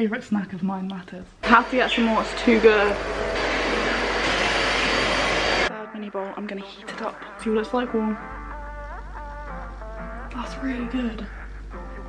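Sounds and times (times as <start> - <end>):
low hum: 1.3 - 5.7
steady rushing noise: 1.4 - 5.7.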